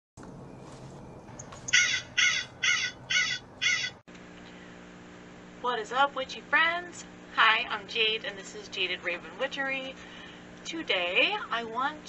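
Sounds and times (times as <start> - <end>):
crow cawing: 1.7 - 4.0.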